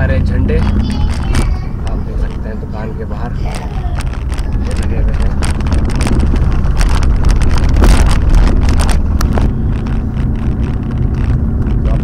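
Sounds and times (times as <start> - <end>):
car engine and road noise: 0.0 - 12.0
sharp clicks and rattles: 0.3 - 12.0.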